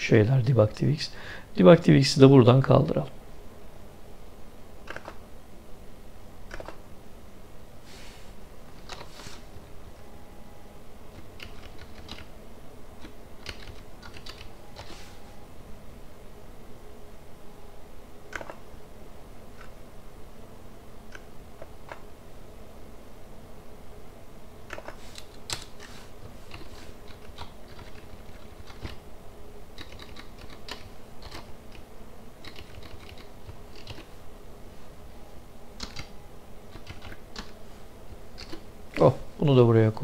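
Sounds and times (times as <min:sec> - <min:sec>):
keyboard key clicks: 0:06.5 - 0:06.8, 0:18.3 - 0:18.6
typing on computer keyboard: 0:11.2 - 0:12.3, 0:13.0 - 0:14.9, 0:26.5 - 0:29.0, 0:29.8 - 0:31.8, 0:32.4 - 0:34.1, 0:35.8 - 0:36.1, 0:36.7 - 0:37.5, 0:38.4 - 0:38.6.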